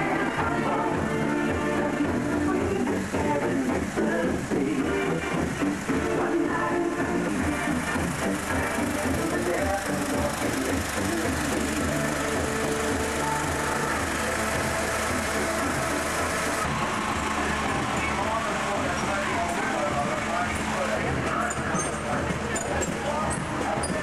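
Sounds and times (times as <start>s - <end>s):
low engine rumble: 0.0s - 24.0s
music through horn loudspeaker: 0.0s - 24.0s.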